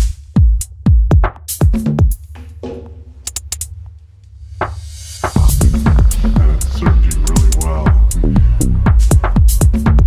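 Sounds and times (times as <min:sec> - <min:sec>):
drum hit: 0:02.3 - 0:03.5, 0:04.6 - 0:08.1
low bass hum: 0:05.3 - 0:10.0.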